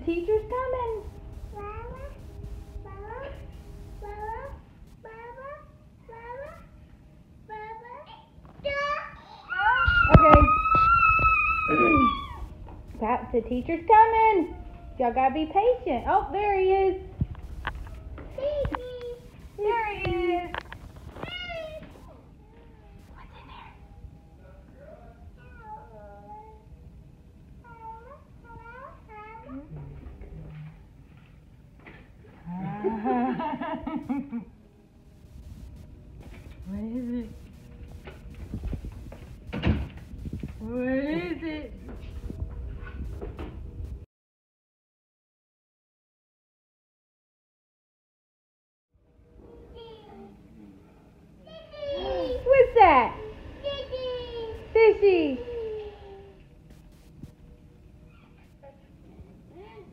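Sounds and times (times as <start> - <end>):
high-pitched mewing cries: 9.4 - 12.5.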